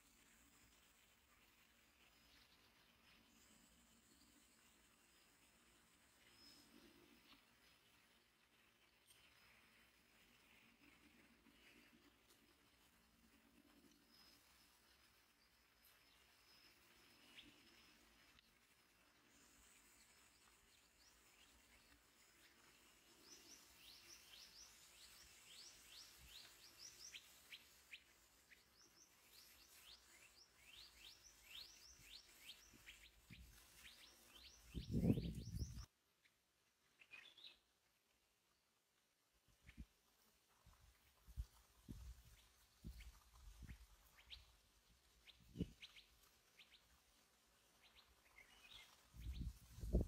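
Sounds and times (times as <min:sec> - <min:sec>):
birds chirping: 0:19.5 - 0:35.9.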